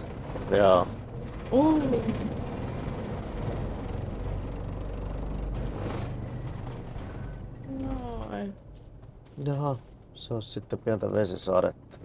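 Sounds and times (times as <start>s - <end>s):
vehicle rumbling over ramp: 0.0s - 9.0s.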